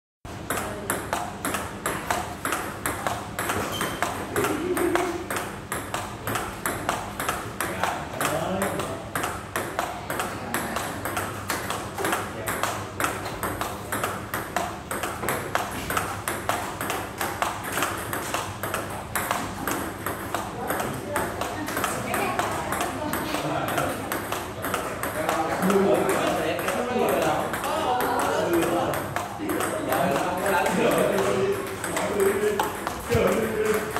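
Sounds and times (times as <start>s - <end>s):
table tennis ball hits: 0.4s - 33.9s.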